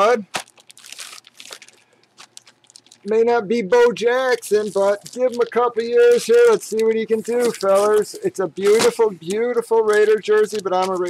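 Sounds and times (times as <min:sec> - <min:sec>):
plastic bag crinkling: 0:00.3 - 0:11.0.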